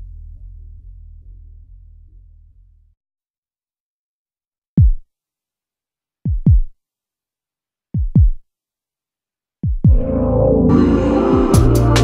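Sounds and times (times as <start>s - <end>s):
deep electronic kick drum: 4.8s - 5.0s, 6.3s - 6.7s, 8.0s - 8.4s, 9.6s - 10.2s, 11.3s - 12.0s.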